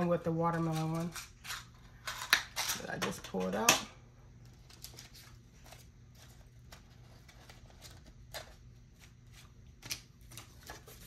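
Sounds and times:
low steady hum: 0.0 - 11.0
paper cards rustling: 4.4 - 11.0.

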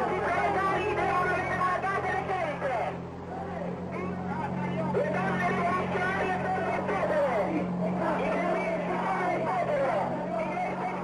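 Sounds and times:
low hum: 0.0 - 11.0
voices talking over one another: 0.0 - 11.0.

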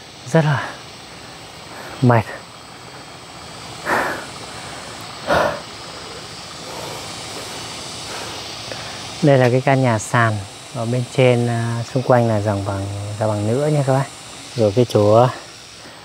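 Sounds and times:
outdoor hiss: 0.0 - 16.0
man breathing hard: 0.6 - 2.5, 3.7 - 9.2, 15.4 - 16.0.

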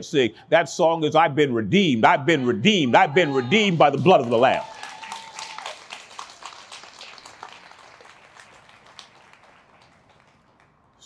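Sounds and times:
congregation applauding: 3.4 - 11.0.

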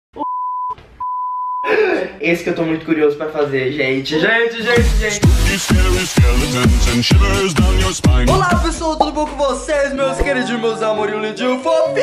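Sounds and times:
man talking: 8.1 - 12.0.

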